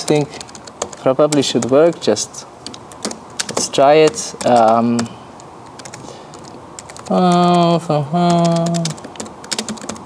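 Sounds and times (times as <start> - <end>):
keyboard typing: 0.0 - 10.0.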